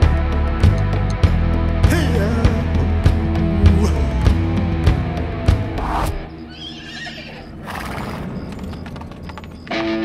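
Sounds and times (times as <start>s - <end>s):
horse whinnying: 6.3s - 8.7s
hoof clip-clops: 6.6s - 10.0s.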